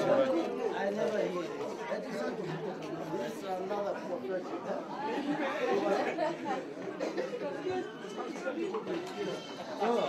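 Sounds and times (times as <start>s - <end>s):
chatter of many people: 0.0s - 10.0s.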